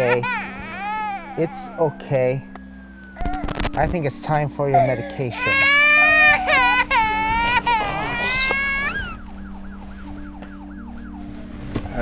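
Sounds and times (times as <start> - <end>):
baby crying: 0.0 - 2.5, 4.7 - 9.3.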